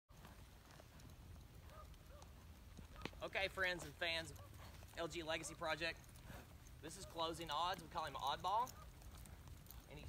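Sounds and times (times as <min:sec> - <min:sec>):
horse hoofbeats on dirt: 0:00.1 - 0:10.0.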